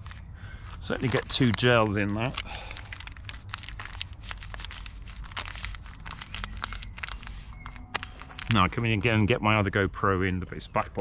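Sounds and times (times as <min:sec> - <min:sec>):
gel sachets crinkling: 0:00.0 - 0:09.6.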